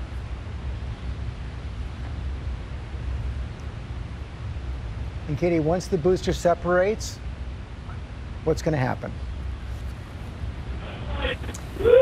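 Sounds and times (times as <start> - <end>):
faint voices: 10.7 - 12.0
person crying out: 11.0 - 12.0.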